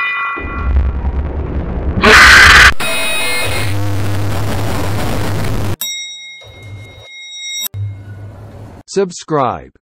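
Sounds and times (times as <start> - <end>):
low hum: 0.4 - 5.8
loud static noise: 2.0 - 5.8
elevator ding ringing: 5.8 - 8.8.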